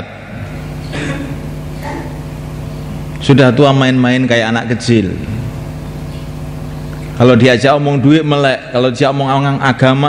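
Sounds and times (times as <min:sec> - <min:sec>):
low mechanical hum: 0:00.0 - 0:10.0
man's voice echoing: 0:03.1 - 0:05.6, 0:07.0 - 0:10.0.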